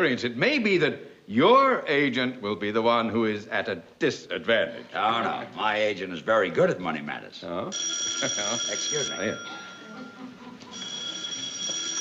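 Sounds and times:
telephone bell ringing: 7.7 - 12.0.

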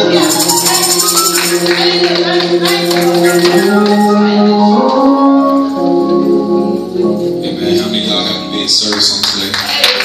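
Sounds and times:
church praise music sustained chords: 0.0 - 9.7.

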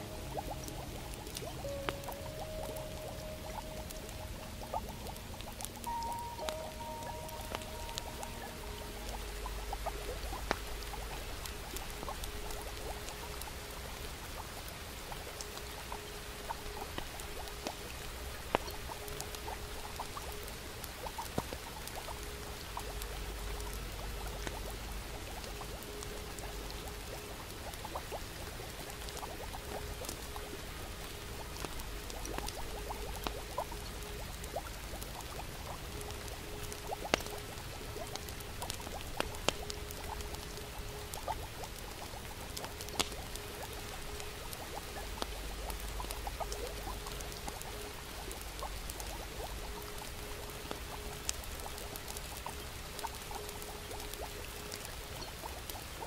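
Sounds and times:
rain hissing: 0.0 - 56.0
soft music: 0.0 - 56.0
log fire crackling and popping: 0.1 - 56.0.

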